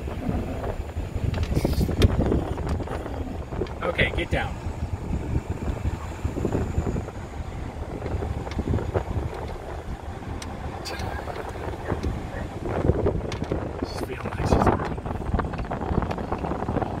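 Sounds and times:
car road noise rumble: 0:00.0 - 0:17.0
wind buffeting microphone: 0:00.0 - 0:17.0.

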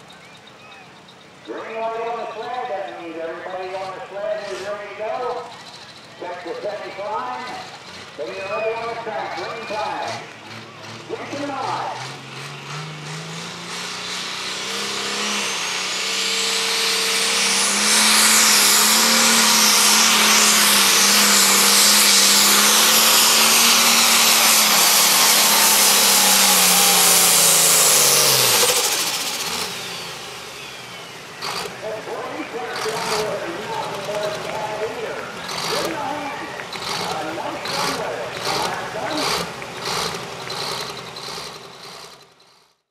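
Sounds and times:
turbo whine: 0:00.0 - 0:42.3
diesel engine at full load: 0:00.0 - 0:42.9.

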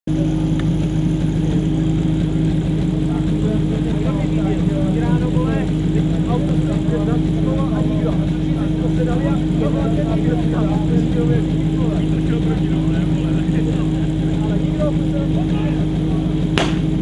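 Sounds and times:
steady engine drone: 0:00.1 - 0:17.0
voices talking: 0:00.1 - 0:17.0.

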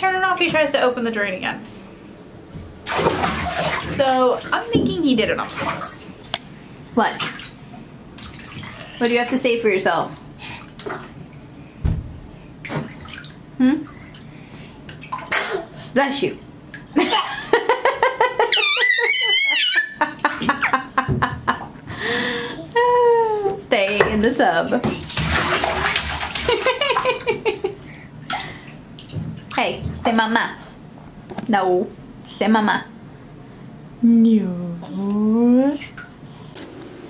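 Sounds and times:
water pouring into bathtub: 0:02.9 - 0:04.4, 0:25.0 - 0:27.3
baby squealing: 0:18.4 - 0:20.0.

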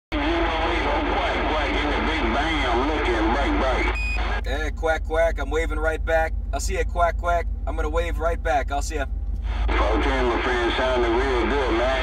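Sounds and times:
radio static: 0:00.1 - 0:04.8, 0:09.4 - 0:12.0
voices over radio: 0:00.1 - 0:12.0
short beep: 0:03.9 - 0:04.2.

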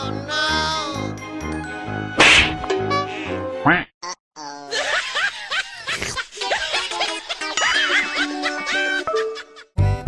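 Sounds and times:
background music: 0:00.0 - 0:03.7, 0:06.5 - 0:10.0.

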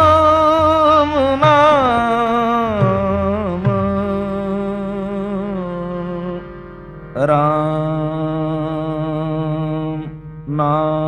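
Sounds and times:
devotional music with held notes: 0:00.0 - 0:11.0.

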